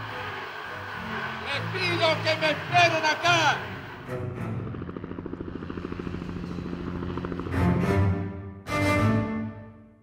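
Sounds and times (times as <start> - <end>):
helicopter rotor chopping: 0.0 - 8.2
low music drone: 0.0 - 10.0.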